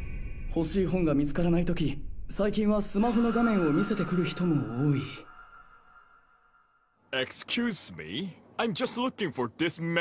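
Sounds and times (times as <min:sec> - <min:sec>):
background music held high tone: 0:02.4 - 0:06.8.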